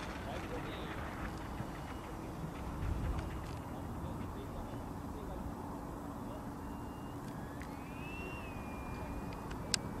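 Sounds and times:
electric ducted fan whine: 0:00.0 - 0:10.0.

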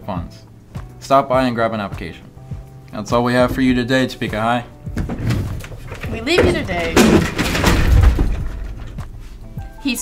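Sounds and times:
heavy thud: 0:04.9 - 0:09.7
clattering crash: 0:05.0 - 0:09.7.

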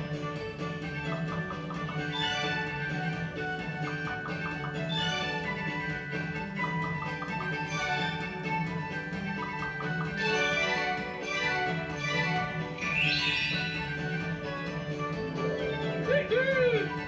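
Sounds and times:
slot machine music: 0:00.0 - 0:17.0
quick chime notes: 0:12.8 - 0:14.0.

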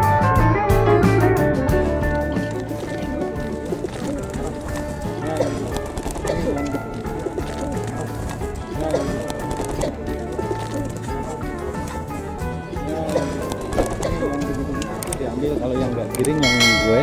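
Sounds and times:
background music: 0:00.0 - 0:17.0
pigeons cooing: 0:01.7 - 0:16.5.

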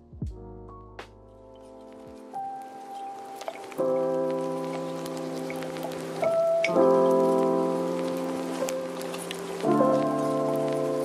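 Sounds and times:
soft keyboard chords: 0:00.0 - 0:11.0
rain patter: 0:01.9 - 0:11.0.

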